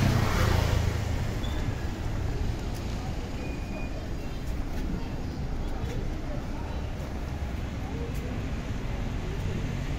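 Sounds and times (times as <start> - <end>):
traffic rumble: 0.0 - 9.9.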